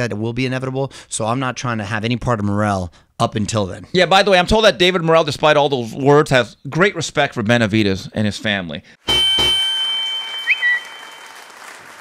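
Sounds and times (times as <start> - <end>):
short rising chirps: 9.1 - 11.5
high ringing tone: 9.1 - 11.6.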